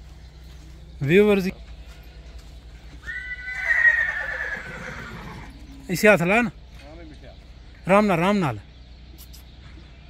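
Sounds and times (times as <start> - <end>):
horse whinnying: 3.0 - 5.6.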